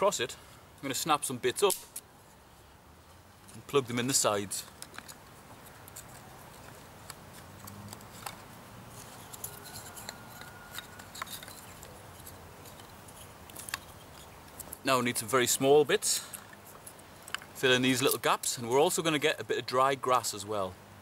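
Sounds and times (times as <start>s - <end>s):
sharp wooden clicks: 4.6s - 14.9s, 16.3s - 18.3s.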